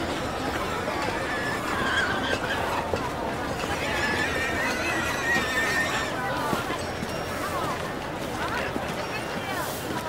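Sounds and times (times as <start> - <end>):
crowd voices: 0.0 - 10.0
street noise: 0.0 - 10.0.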